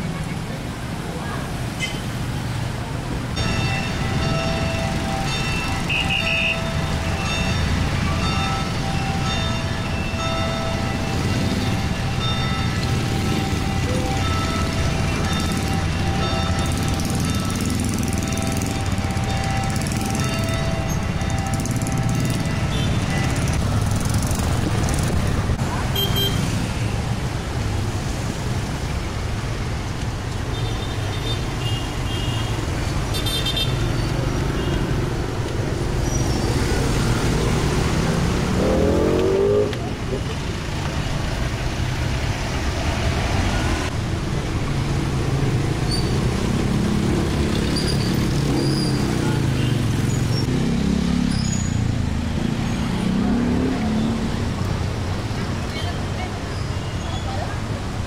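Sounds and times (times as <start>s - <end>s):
street traffic engines: 0.0s - 58.0s
engine revving: 36.4s - 39.9s, 46.4s - 54.4s.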